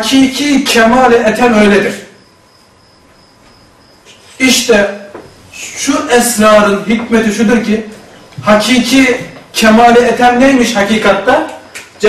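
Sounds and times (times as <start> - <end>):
high-pitched insect-like chirping: 2.0 - 4.7.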